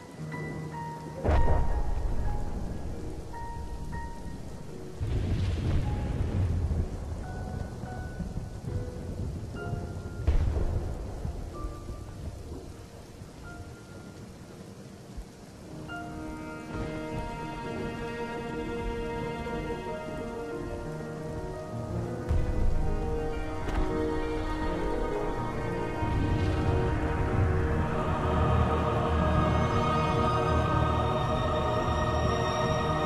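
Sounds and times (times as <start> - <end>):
rain-like hiss: 0.0 - 33.0
sparse slow music: 0.0 - 33.0
deep rolling rumbles: 1.2 - 13.5, 15.4 - 33.0.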